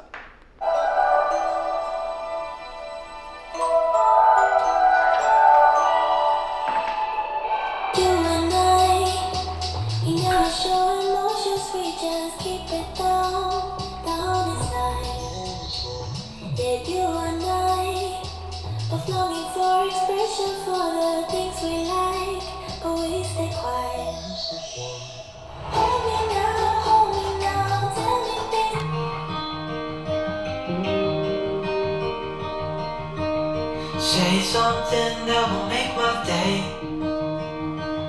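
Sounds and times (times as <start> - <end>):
held music chord through speaker: 0.6 - 30.3, 33.8 - 37.1
pop song with woman singing: 6.0 - 29.9, 33.8 - 37.1
deep sliding bass line: 8.0 - 10.8, 25.4 - 29.1.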